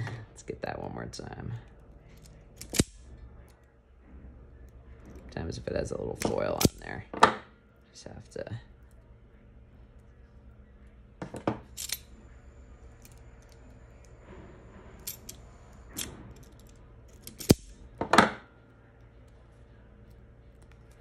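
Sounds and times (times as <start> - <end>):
wire stripper clicking and snapping: 2.6 - 3.1, 17.3 - 17.8.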